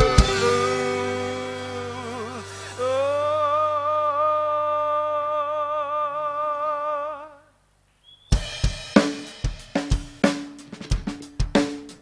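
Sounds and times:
man singing a long note: 0.0 - 7.6.

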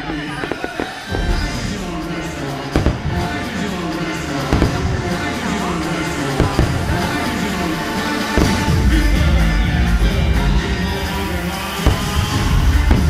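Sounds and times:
fireworks bangs: 0.0 - 13.0
loud show music: 0.0 - 13.0
voices: 0.0 - 13.0.

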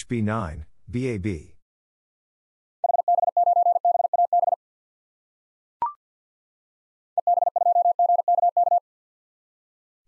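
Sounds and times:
morse code tone: 7.2 - 8.8.

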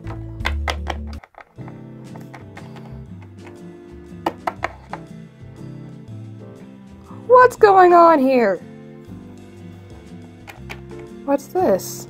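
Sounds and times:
plastic toy tapping: 0.0 - 3.6, 4.2 - 5.1
background music: 0.0 - 12.0.

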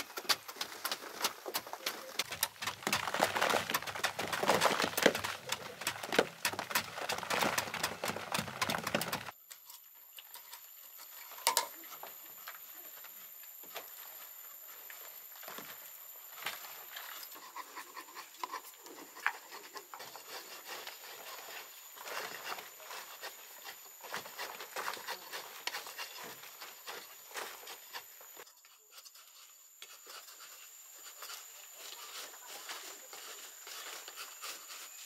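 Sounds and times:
hand hoes scraping dry earth: 0.0 - 9.4, 10.6 - 35.0.

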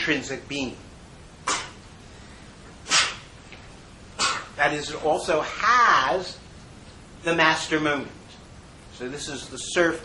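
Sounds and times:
steady low hiss: 0.0 - 10.0
quick sniff: 2.8 - 3.3.

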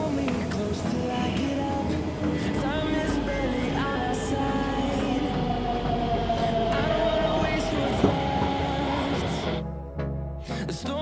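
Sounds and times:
train whine falling in pitch: 3.0 - 9.6.

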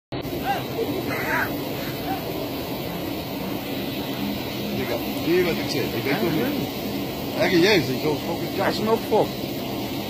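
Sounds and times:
noisy background: 0.1 - 10.0
indistinct voices: 0.2 - 2.6.

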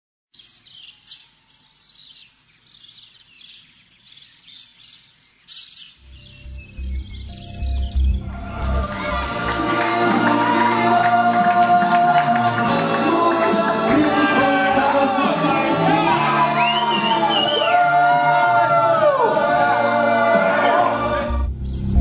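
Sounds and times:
birds chirping: 0.3 - 9.3
music with pulsing bass: 6.1 - 17.6, 19.6 - 22.0.

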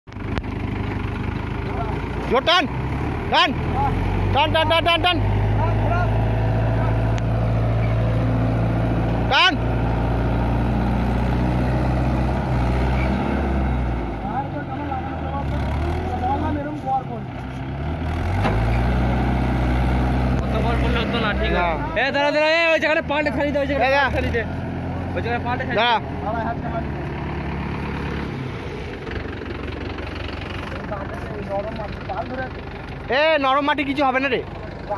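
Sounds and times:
tractor diesel engine running: 0.1 - 34.9.

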